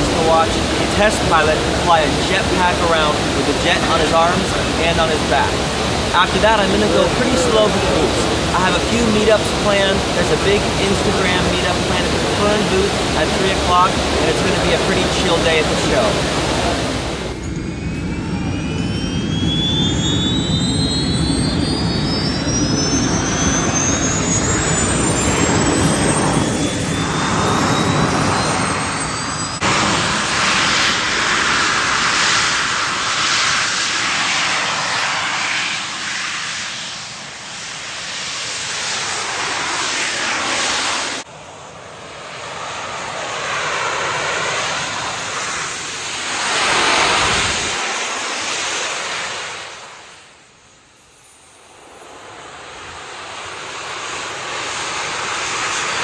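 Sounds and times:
high turbine whines rising in pitch: 0:00.0 - 0:56.0
jet turbines rushing: 0:00.0 - 0:56.0.

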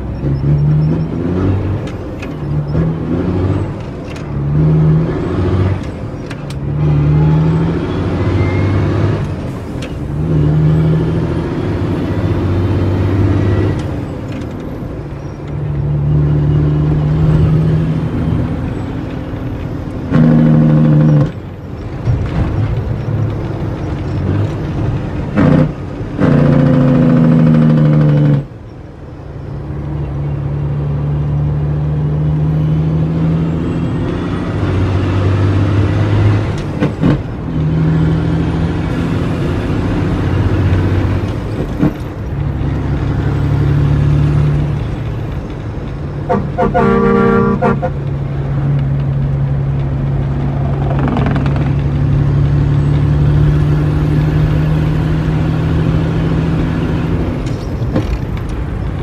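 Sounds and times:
truck diesel engine running: 0:35.6 - 0:59.0
truck horn toot: 0:46.2 - 0:48.1.

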